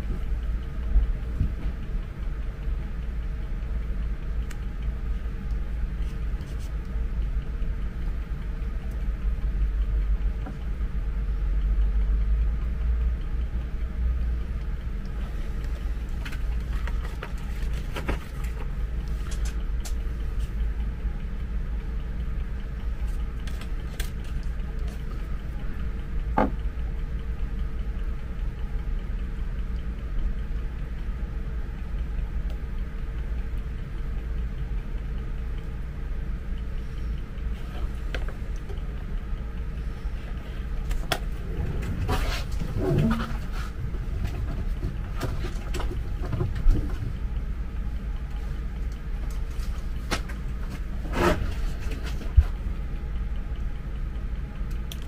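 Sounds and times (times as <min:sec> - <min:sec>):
faint steady hum: 0:00.0 - 0:55.0
steady low rumble: 0:00.0 - 0:55.0.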